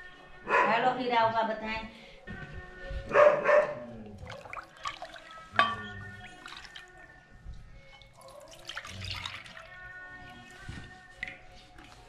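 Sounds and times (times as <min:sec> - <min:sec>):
background music: 0:00.0 - 0:12.0
dog barking: 0:00.5 - 0:00.9, 0:03.1 - 0:03.9.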